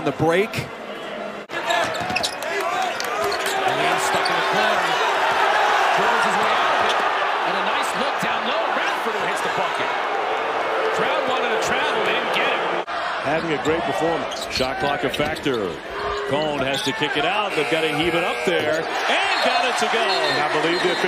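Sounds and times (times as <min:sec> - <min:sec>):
crowd noise: 0:00.0 - 0:21.0
sneakers squeaking: 0:01.7 - 0:02.4, 0:13.6 - 0:16.9.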